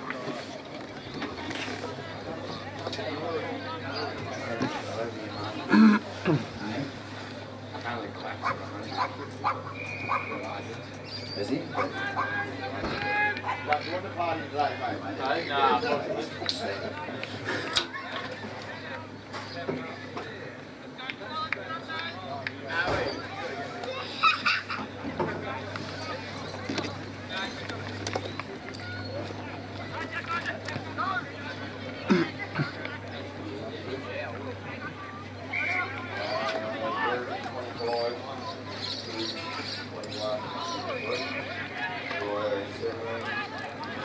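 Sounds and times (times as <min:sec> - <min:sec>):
people shouting and calling: 0:11.4 - 0:14.5, 0:34.4 - 0:44.0.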